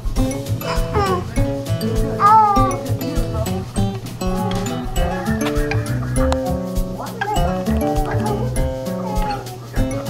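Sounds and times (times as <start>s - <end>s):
music with steady beat: 0.0s - 10.0s
toddler squealing: 0.6s - 1.3s, 2.2s - 2.9s, 4.2s - 9.6s.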